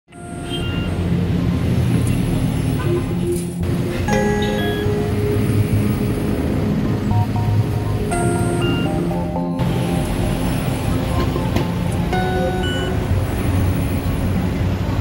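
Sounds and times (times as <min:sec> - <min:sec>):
background music with heavy bass: 0:02.8 - 0:13.6.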